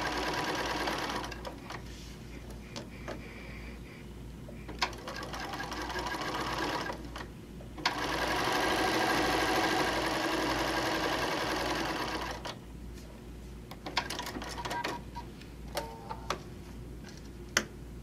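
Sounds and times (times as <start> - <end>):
sewing machine stitching: 0.0 - 1.5, 4.8 - 7.0, 7.8 - 12.5.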